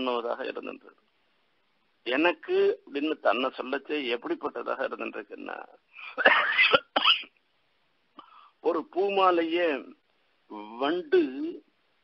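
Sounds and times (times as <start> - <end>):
man coughing: 6.0 - 7.4.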